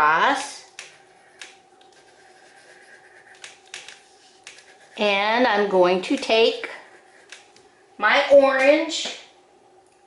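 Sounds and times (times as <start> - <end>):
low steady room hum: 0.0 - 10.0
wax crayon rubbing on paper: 1.0 - 7.5.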